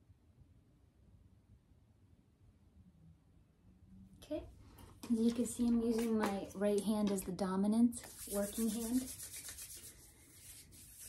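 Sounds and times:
palms rubbing together: 5.0s - 7.3s, 8.0s - 11.0s.

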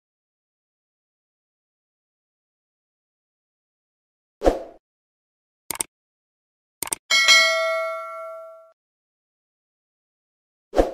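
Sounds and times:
notification bell ding: 7.1s - 8.7s.

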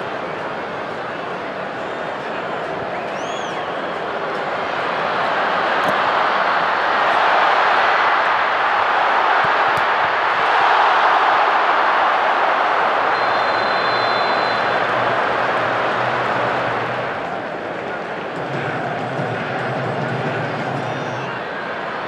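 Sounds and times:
stadium crowd cheering: 0.0s - 22.0s.

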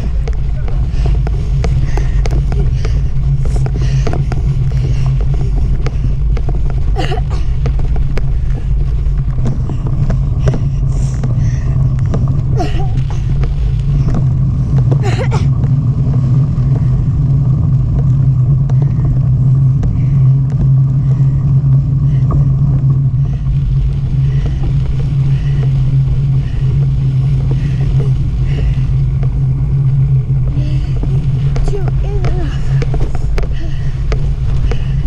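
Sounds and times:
bicycle tyres on dirt trail: 0.0s - 35.0s
wind buffeting microphone: 0.0s - 35.0s.

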